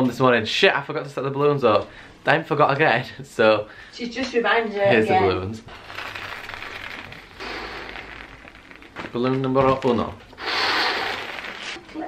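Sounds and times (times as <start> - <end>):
breath inflating balloon: 5.7 - 9.1, 10.3 - 12.0.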